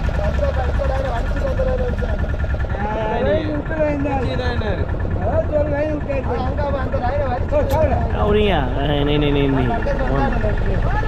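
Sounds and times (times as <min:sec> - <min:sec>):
boat engine idling: 0:00.0 - 0:11.0
men talking loudly: 0:00.0 - 0:11.0.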